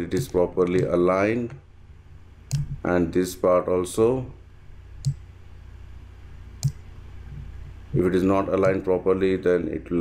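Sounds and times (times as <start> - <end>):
faint low hum: 0.0 - 10.0
mouse button clicks: 2.5 - 2.8, 6.6 - 6.8.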